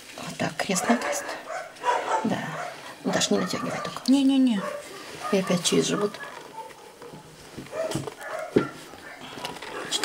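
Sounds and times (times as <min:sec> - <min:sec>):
dog whimpering: 0:00.8 - 0:04.0, 0:04.6 - 0:09.5
quiet handling noise: 0:04.0 - 0:10.0.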